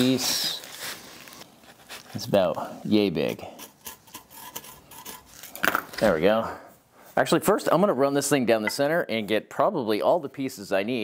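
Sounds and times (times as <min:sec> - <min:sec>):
pencil scratching on wood: 0:03.3 - 0:05.4.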